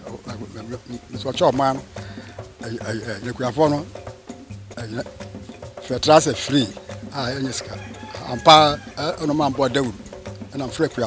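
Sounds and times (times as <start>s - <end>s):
man speaking: 0.0s - 4.0s, 4.7s - 5.2s, 5.8s - 11.0s.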